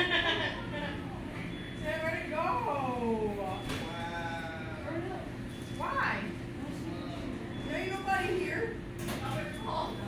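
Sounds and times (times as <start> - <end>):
restaurant background noise: 0.0 - 10.0.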